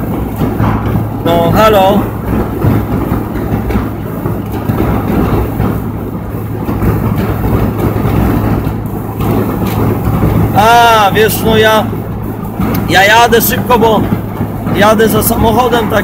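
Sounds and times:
engine and tyre drone: 0.0s - 16.0s
wind rushing through windows: 0.0s - 16.0s.

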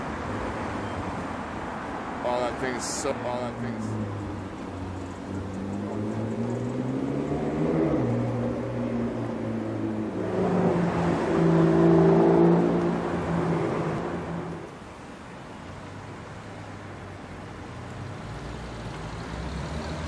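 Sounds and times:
sports car engine passing: 1.9s - 14.8s, 17.6s - 20.0s.

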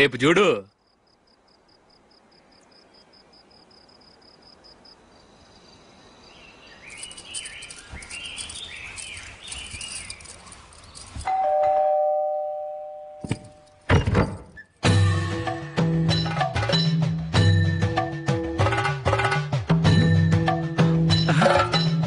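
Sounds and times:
birds chirping: 0.0s - 11.7s
two-tone doorbell chime: 11.3s - 13.6s.

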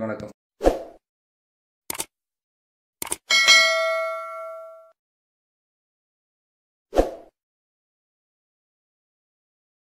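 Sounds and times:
bell ding: 3.3s - 5.0s.

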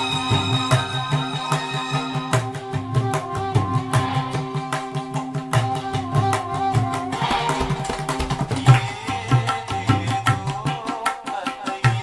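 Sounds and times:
melodic backing track: 0.0s - 8.6s
tabla playing: 0.0s - 12.0s.

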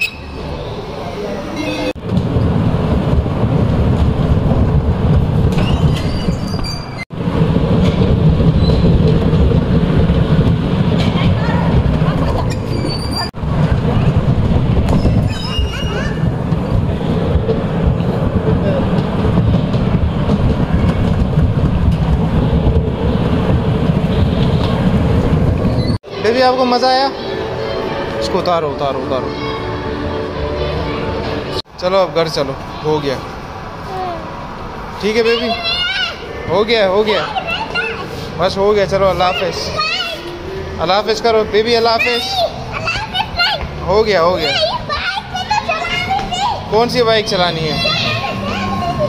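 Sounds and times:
bumper cars rumbling: 0.0s - 49.0s.

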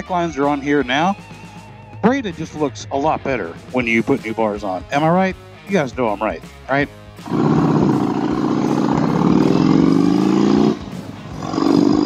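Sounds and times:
motorcycle engine accelerating: 7.2s - 12.0s.

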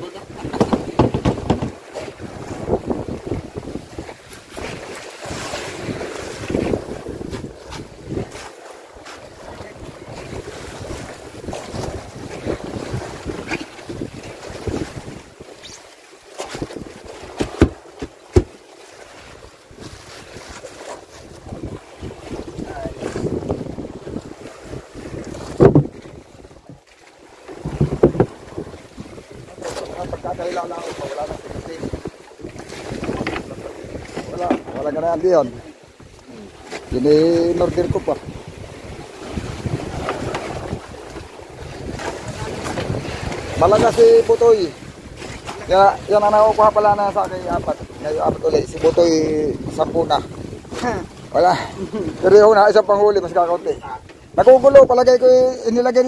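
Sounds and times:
wind buffeting microphone: 0.0s - 15.8s, 16.5s - 55.8s
gear knocking on boat deck: 0.4s - 1.9s, 17.3s - 18.6s.

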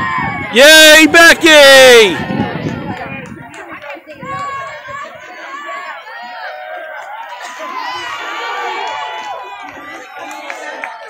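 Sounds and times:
crowd cheering and shouting: 0.0s - 11.0s.

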